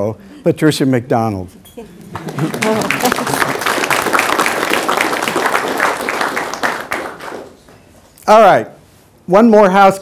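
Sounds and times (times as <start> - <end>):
audience applauding: 2.1 - 7.8.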